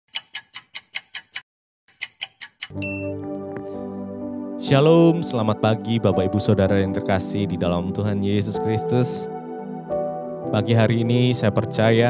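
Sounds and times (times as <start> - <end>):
sharp ticking: 0.1 - 3.1
electronic keyboard chord: 2.7 - 12.0
bright chime: 2.8 - 3.2.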